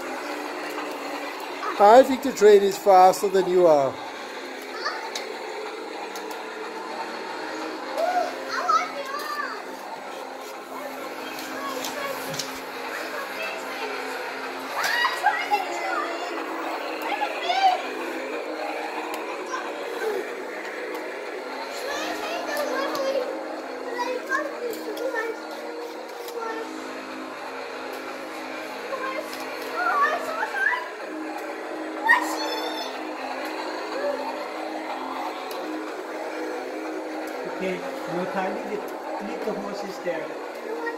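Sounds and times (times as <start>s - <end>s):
toy train playing tune: 0.0s - 40.9s
toy train running on track: 0.0s - 40.9s
young child's voice: 4.7s - 5.2s, 8.0s - 9.8s, 10.8s - 13.9s, 14.7s - 16.4s, 17.0s - 17.9s, 21.7s - 25.6s, 26.2s - 26.8s, 28.9s - 31.0s, 32.0s - 33.0s, 40.6s - 40.9s.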